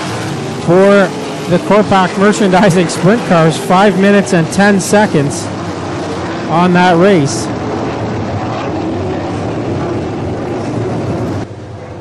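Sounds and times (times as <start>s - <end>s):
race car engines rumbling: 0.0s - 12.0s.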